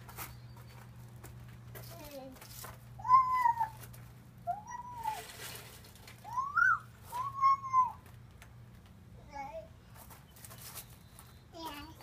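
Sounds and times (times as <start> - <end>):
toddler calling: 3.0 - 3.8, 4.5 - 5.2, 6.2 - 8.0.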